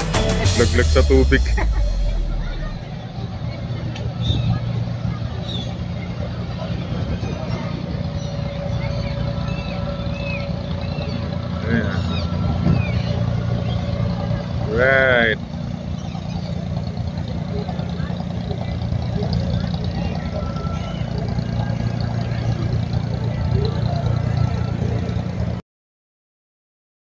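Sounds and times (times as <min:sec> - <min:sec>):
boat engine humming: 0:00.0 - 0:25.6
voices in background: 0:00.5 - 0:25.6.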